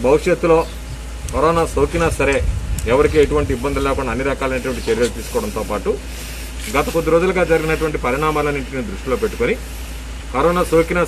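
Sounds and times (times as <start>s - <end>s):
low hum and hiss: 0.0s - 11.0s
man speaking: 1.3s - 9.7s, 10.3s - 11.0s.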